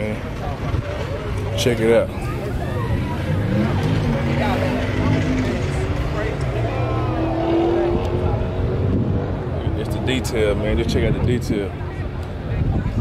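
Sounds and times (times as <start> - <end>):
background voices: 0.0 - 13.0.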